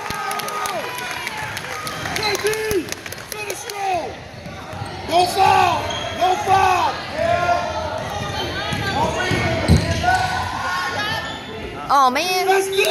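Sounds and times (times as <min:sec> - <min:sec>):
sneakers squeaking on wooden floor: 0:04.4 - 0:06.4.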